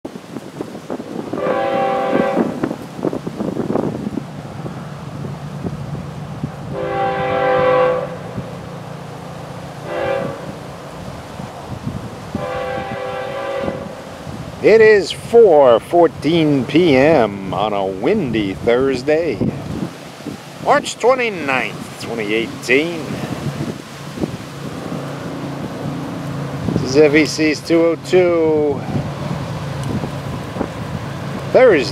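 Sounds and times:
diesel locomotive engine drone: 0.1s - 31.9s
train rumbling: 0.1s - 31.9s
wind buffeting microphone: 0.1s - 31.9s
locomotive air horn blasts: 1.3s - 2.7s, 6.7s - 8.4s, 9.8s - 10.6s, 12.3s - 14.1s.

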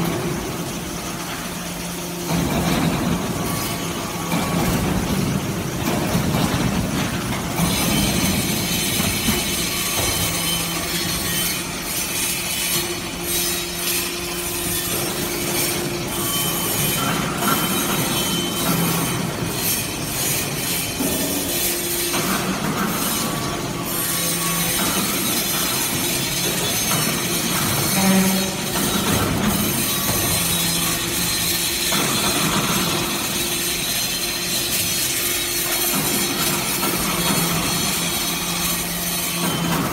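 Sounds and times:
hydraulic press mechanical noise: 0.0s - 39.9s.

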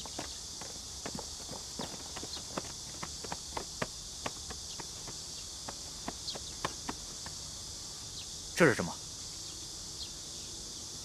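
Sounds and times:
footsteps scuffing on hard surface: 0.0s - 7.4s
steady high-pitched hiss: 0.0s - 11.0s.

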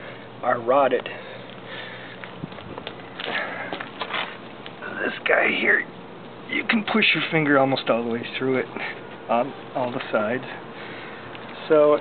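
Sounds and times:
rustles: 1.2s - 4.9s.

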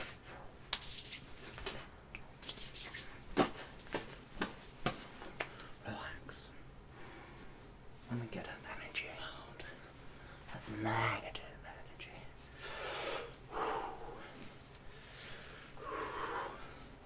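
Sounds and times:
man whispering: 5.7s - 6.7s, 8.0s - 12.5s.

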